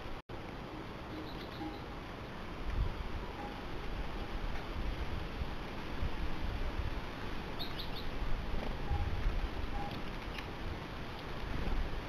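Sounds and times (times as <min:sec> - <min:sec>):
background hiss: 0:00.0 - 0:12.0
sparrow chirping: 0:01.1 - 0:01.9, 0:07.6 - 0:08.1.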